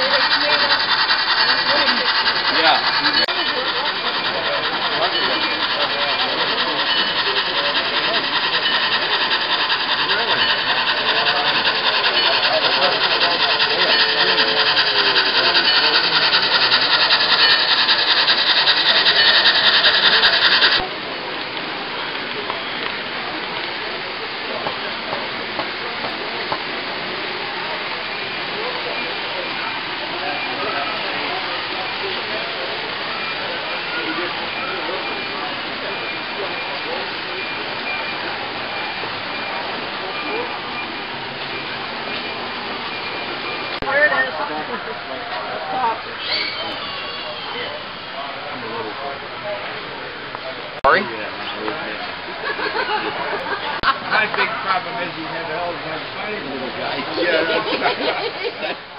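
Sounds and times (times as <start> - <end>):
model train running: 0.0 - 58.9
murmur of voices: 0.0 - 58.9.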